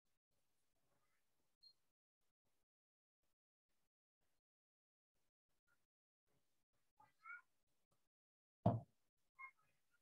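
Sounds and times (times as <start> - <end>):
thump: 8.6 - 8.9.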